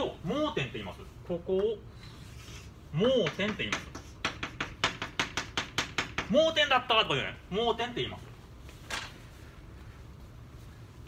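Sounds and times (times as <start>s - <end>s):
chalk tapping on blackboard: 3.1s - 6.4s.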